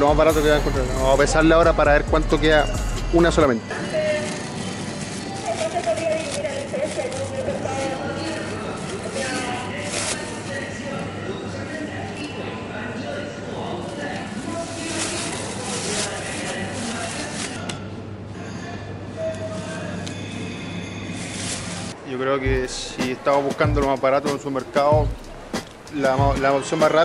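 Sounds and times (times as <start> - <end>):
voices in a large store: 0.0 - 27.0
plastic bag rustling: 3.7 - 11.0, 13.7 - 17.6, 21.1 - 27.0.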